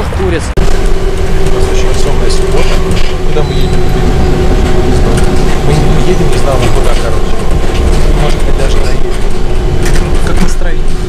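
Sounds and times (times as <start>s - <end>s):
bus drive rumble: 0.0s - 11.0s
steady whine: 0.0s - 11.0s.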